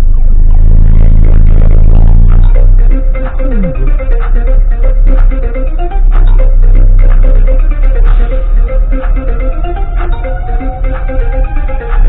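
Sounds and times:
car driving on dirt road: 0.0s - 12.0s
music with held low notes: 0.0s - 12.0s.

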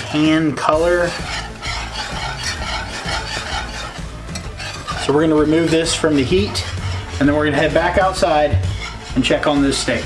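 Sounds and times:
gravy simmering and sizzling: 0.0s - 10.0s
whisk stirring thick gravy: 0.0s - 10.0s.

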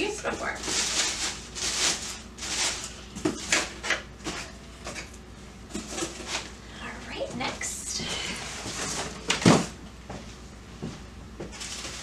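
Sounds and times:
packing material crinkling: 0.2s - 4.4s, 11.5s - 12.0s.

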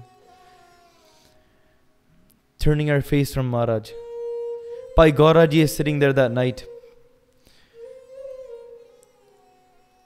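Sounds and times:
bowed string note: 3.9s - 7.2s.

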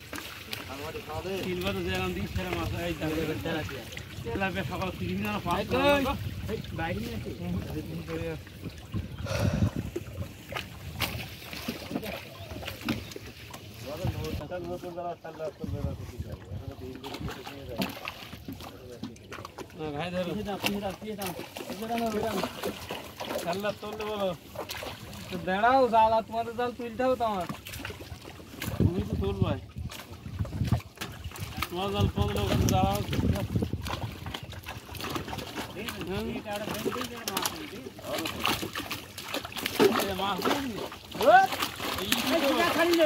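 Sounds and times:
wet fishing net hauled by hand: 0.0s - 15.1s, 15.9s - 43.0s
water splashing: 0.0s - 43.0s
men talking: 0.4s - 10.0s, 11.6s - 13.0s, 13.7s - 27.6s, 28.7s - 29.7s, 31.5s - 34.4s, 35.0s - 43.0s
wind rumble on microphone: 1.5s - 11.5s, 13.8s - 14.5s, 15.6s - 17.9s, 28.6s - 36.2s.

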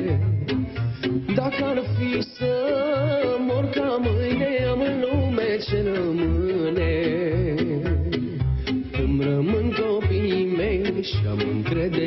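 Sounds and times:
folk band with bass beat: 0.0s - 12.0s
man singing with vibrato: 0.0s - 12.0s.

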